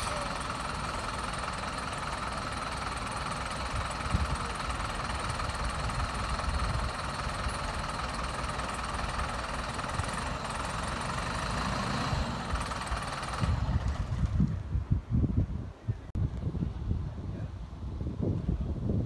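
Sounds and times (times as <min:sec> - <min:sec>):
diesel bus engine idling: 0:00.0 - 0:14.9
wind gusts on microphone: 0:12.1 - 0:19.0.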